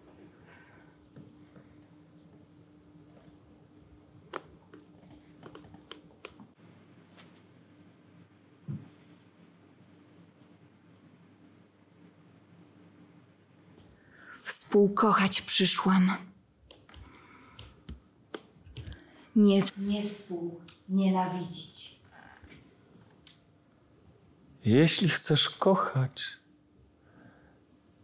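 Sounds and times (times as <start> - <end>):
faint low hum: 0.0 - 28.0.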